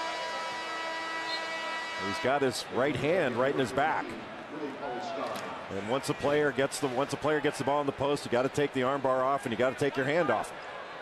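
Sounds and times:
arena horn sustained note: 0:00.0 - 0:02.4
crowd noise: 0:00.0 - 0:11.0.

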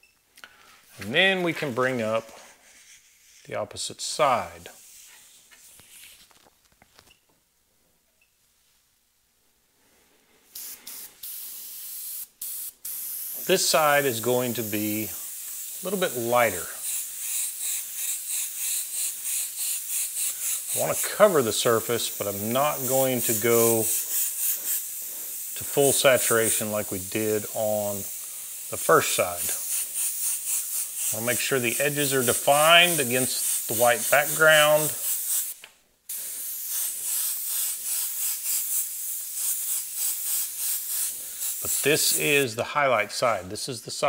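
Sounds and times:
airbrush spraying paint: 0:00.9 - 0:06.4, 0:10.5 - 0:43.5.

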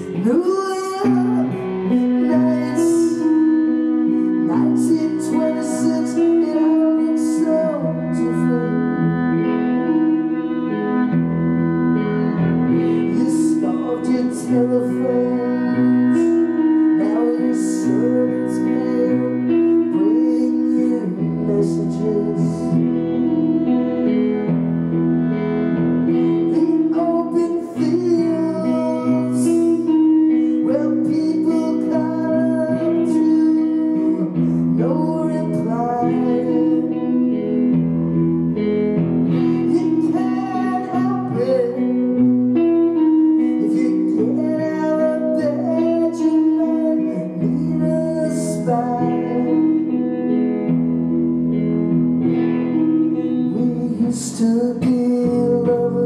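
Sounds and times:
bowed violin: 0:00.0 - 0:56.0
electric guitar: 0:00.0 - 0:56.0.

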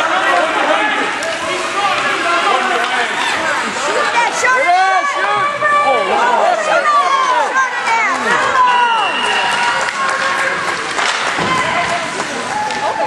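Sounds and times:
crowd talking and calling out: 0:00.0 - 0:13.0.

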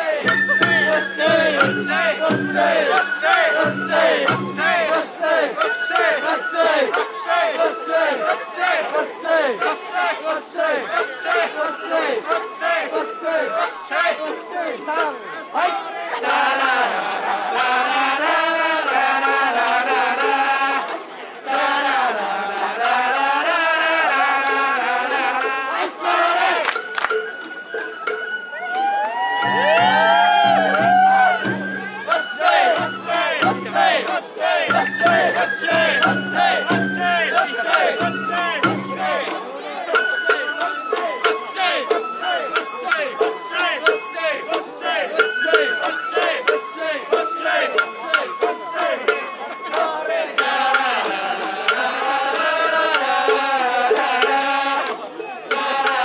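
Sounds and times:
group shouting chants in unison: 0:00.0 - 0:26.7, 0:29.4 - 0:40.4
bamboo flute melody: 0:00.0 - 0:56.0
crowd: 0:00.0 - 0:56.0
taiko drum strikes: 0:00.2 - 0:04.8, 0:29.4 - 0:32.0, 0:32.7 - 0:34.1, 0:34.7 - 0:39.2
low pulsing festival music: 0:29.2 - 0:39.2.

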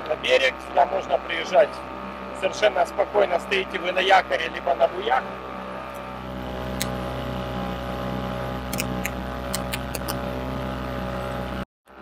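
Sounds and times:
outboard motor running: 0:00.0 - 0:12.0
short sharp ticks: 0:08.7 - 0:10.2.

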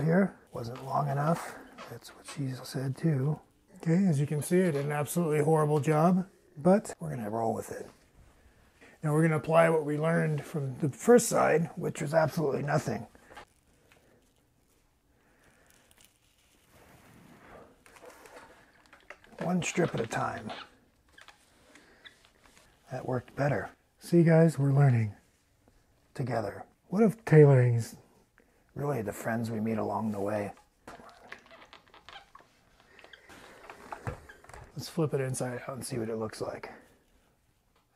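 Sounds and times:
fabric rustling and handling: 0:09.2 - 0:20.4.

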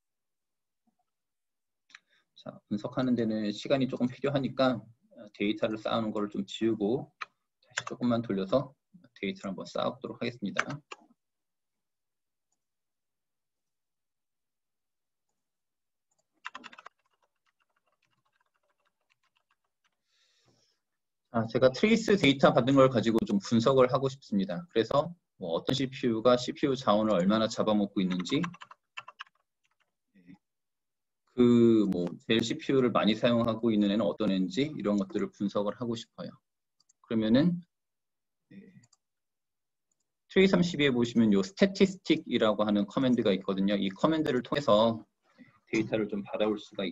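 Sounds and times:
keyboard typing: 0:07.2 - 0:08.0, 0:10.5 - 0:11.1, 0:16.1 - 0:20.0, 0:26.9 - 0:29.9.

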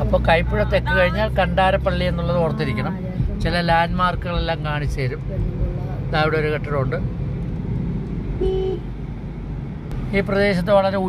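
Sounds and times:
car road and engine noise: 0:00.0 - 0:11.0
car horn toot: 0:08.4 - 0:08.9.

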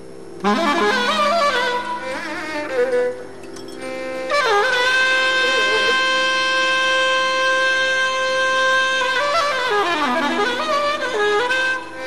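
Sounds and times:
low steady drone: 0:00.0 - 0:12.0
saxophone long note: 0:00.4 - 0:12.0.

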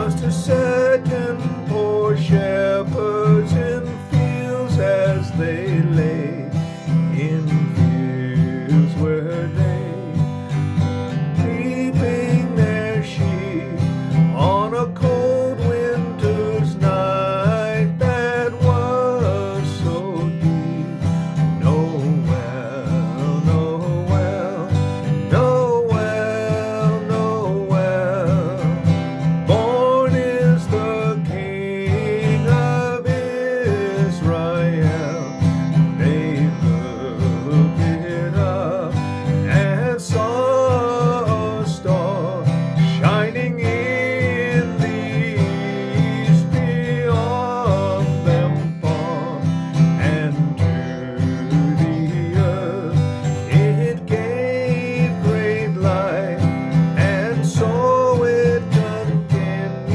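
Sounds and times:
man singing: 0:00.0 - 0:59.9
strummed acoustic guitar: 0:00.0 - 0:59.9.

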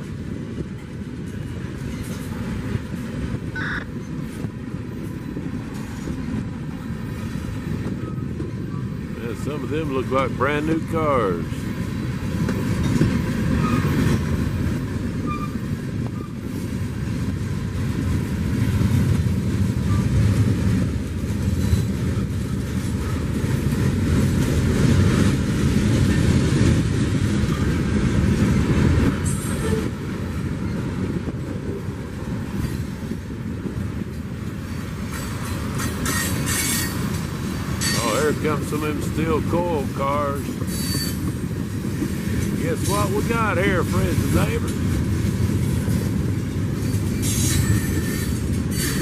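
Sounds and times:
freight train wheels rumbling: 0:00.0 - 0:49.0.

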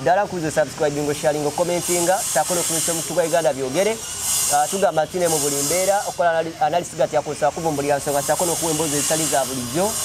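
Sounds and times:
man talking: 0:00.0 - 0:10.0
high hiss: 0:00.7 - 0:06.4.

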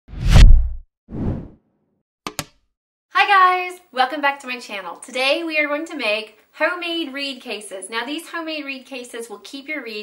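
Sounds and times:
deep whoosh: 0:00.1 - 0:01.5.

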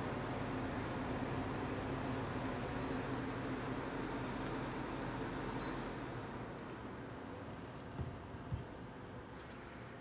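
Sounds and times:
low room hum: 0:00.0 - 0:10.0.

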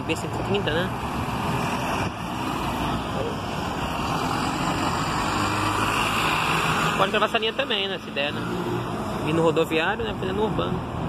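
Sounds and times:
diesel bus engine: 0:00.0 - 0:11.0
road noise: 0:00.0 - 0:11.0.

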